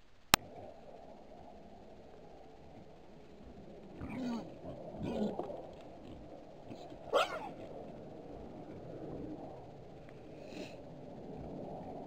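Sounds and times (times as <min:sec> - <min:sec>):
wild boars grunting: 0:03.9 - 0:08.9
wild boar squealing: 0:06.7 - 0:07.6.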